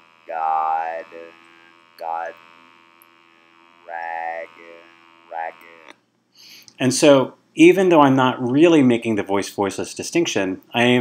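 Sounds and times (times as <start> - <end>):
electrolarynx buzzing speech: 0.0 - 6.0.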